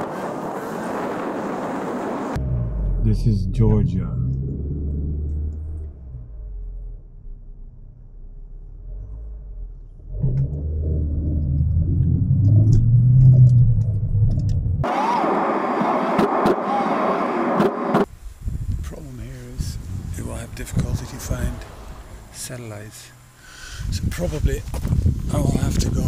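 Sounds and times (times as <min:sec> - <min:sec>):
car engine and road rumble: 0:00.0 - 0:16.7, 0:17.5 - 0:26.0.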